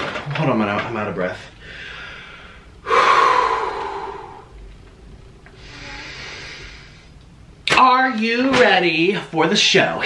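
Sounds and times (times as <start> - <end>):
man breathing heavily: 1.6 - 4.6, 5.6 - 7.2.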